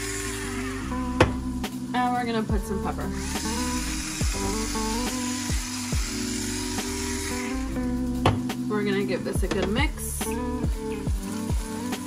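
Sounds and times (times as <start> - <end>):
electric pepper grinder whirring: 0.0 - 1.4, 3.1 - 8.4.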